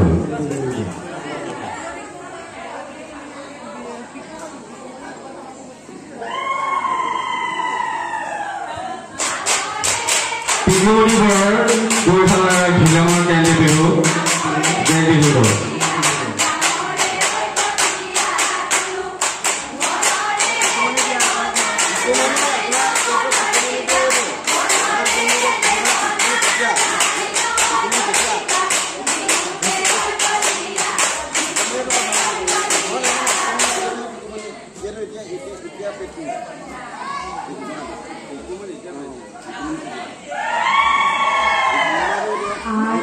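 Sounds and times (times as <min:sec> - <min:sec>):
audience chattering: 0:00.0 - 0:43.0
women singing together: 0:08.7 - 0:34.3
rhythmic hand clapping: 0:09.2 - 0:34.1.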